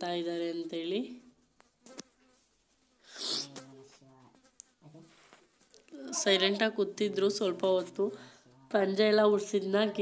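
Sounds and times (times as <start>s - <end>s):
short breathy hiss: 3.0s - 3.6s.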